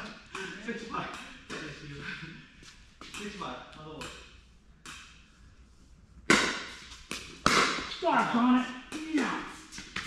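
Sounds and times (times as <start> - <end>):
paddles striking ball: 6.3 - 8.3.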